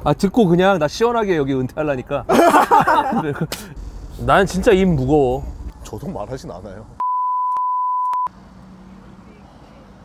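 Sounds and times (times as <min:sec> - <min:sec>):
high-pitched censor beep: 0:07.0 - 0:08.3.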